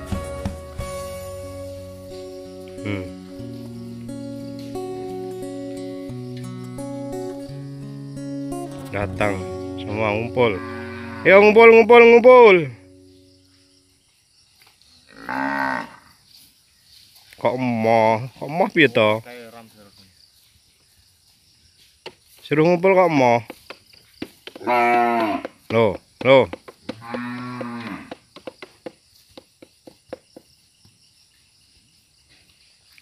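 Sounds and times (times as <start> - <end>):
faint insect drone: 0.7 - 33.0
cow mooing: 8.7 - 12.8, 15.1 - 16.1, 24.6 - 25.5, 27.0 - 28.2.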